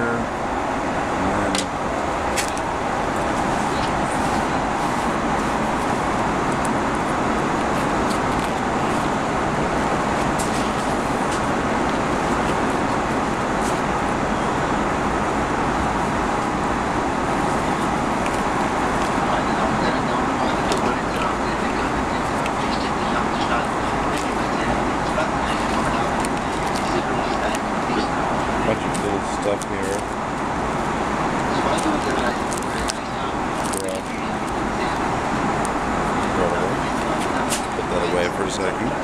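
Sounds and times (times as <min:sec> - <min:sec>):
airplane cabin noise: 0:00.0 - 0:39.0.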